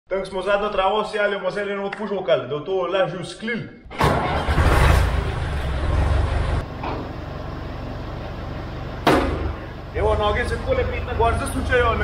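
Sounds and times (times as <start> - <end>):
tractor engine running: 4.0 - 12.0
sharp knock: 9.0 - 9.6.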